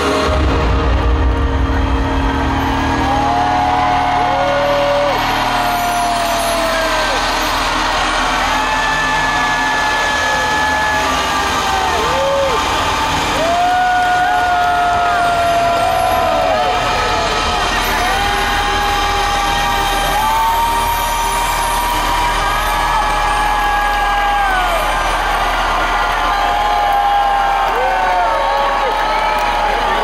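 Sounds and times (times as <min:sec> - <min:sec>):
crowd cheering and screaming: 0:00.0 - 0:30.0.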